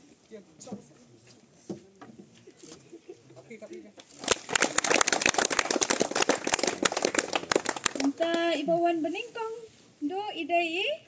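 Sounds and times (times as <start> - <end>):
small group clapping: 4.0 - 8.5.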